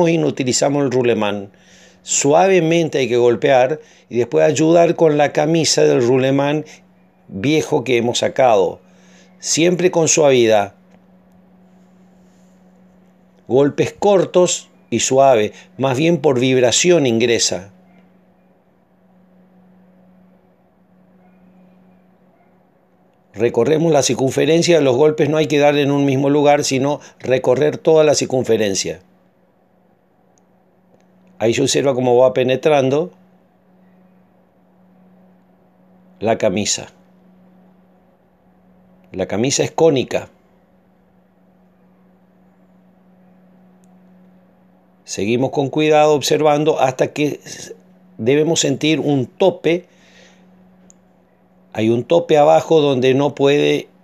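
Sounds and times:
faint low hum: 0.0s - 54.0s.

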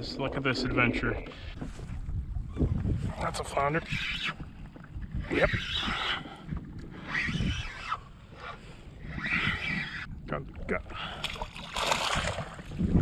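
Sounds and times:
wind rumbling on microphone: 0.0s - 13.0s
water lapping against kayak hull: 1.2s - 13.0s.

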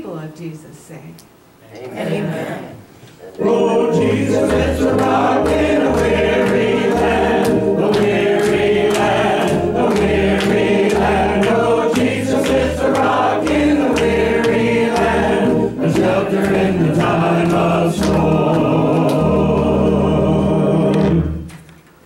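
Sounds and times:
congregation singing: 2.0s - 21.7s
hand clapping: 4.3s - 19.8s.

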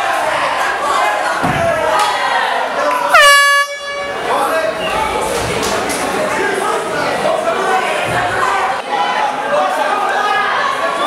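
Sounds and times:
crowd noise: 0.0s - 11.0s
air horn blast: 3.0s - 4.3s.

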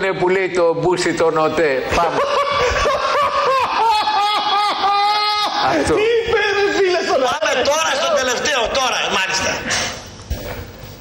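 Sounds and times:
high-pitched squealing laughter: 1.9s - 5.9s.

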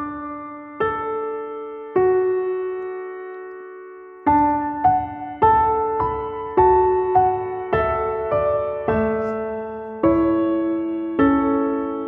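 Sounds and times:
soft piano chords: 0.0s - 12.0s.

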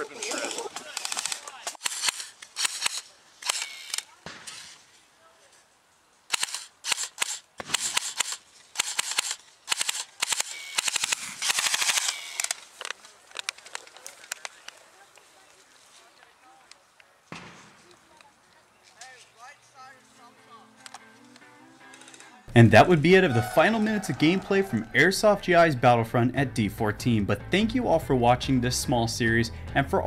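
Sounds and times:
airsoft rifles firing bursts: 0.7s - 4.8s, 6.3s - 12.7s
single airsoft shots: 6.3s - 12.2s.

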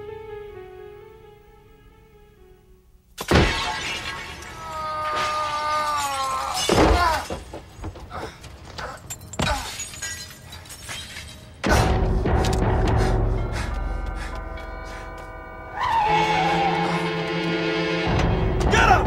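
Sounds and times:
glass shattering: 3.2s - 7.6s, 9.0s - 11.8s
falling debris: 3.2s - 12.0s
dramatic film music: 11.6s - 19.0s.

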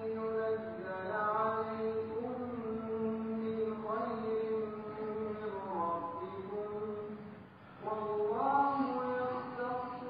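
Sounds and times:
man chanting recitation: 0.0s - 10.0s.

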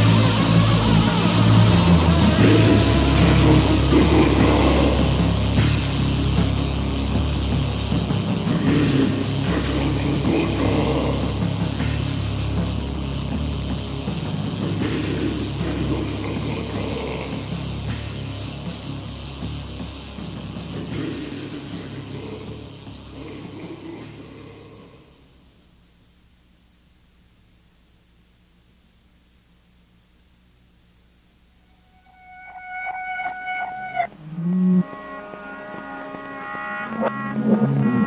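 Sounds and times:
distorted metal music: 0.0s - 25.4s, 31.6s - 38.0s.

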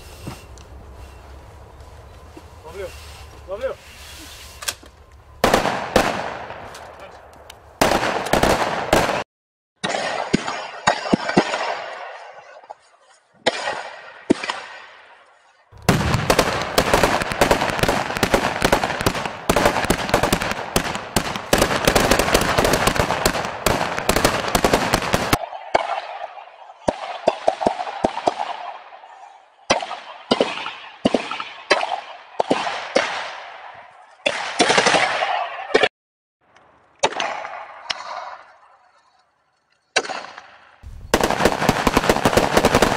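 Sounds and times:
automatic rifle fire: 5.4s - 6.6s, 7.8s - 9.2s, 15.8s - 25.9s, 34.3s - 35.9s, 40.0s - 42.9s
echoing gunshots and short bursts: 5.4s - 7.2s, 7.8s - 12.6s, 13.4s - 15.2s, 15.8s - 35.9s, 40.0s - 42.9s.

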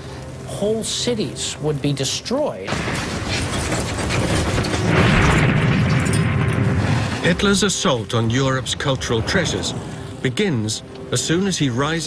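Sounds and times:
dense crackling: 0.0s - 12.0s
explosion-like roar: 2.7s - 7.6s
low rumbling: 2.7s - 11.0s.

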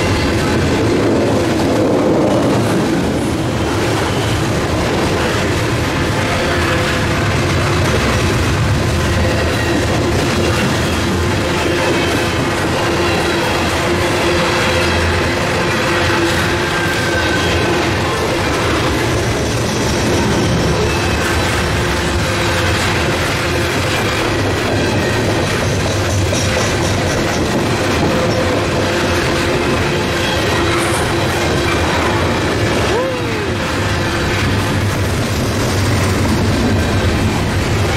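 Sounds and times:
train wheels clattering over rails: 0.0s - 37.9s.

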